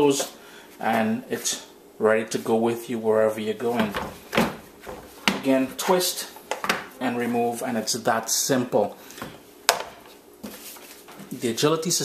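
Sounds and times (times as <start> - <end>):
faint handling rustle: 10.4 - 11.6.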